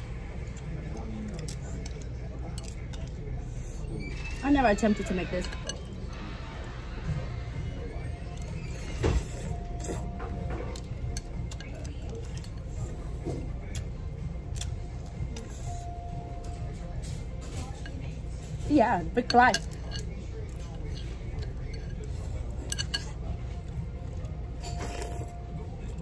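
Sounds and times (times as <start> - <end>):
low room hum: 0.0 - 26.0
quiet background music: 0.0 - 26.0.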